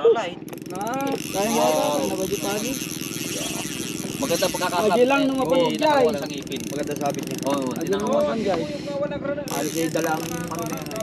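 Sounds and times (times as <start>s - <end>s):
fishing reel clicking rapidly: 0.4s - 11.0s.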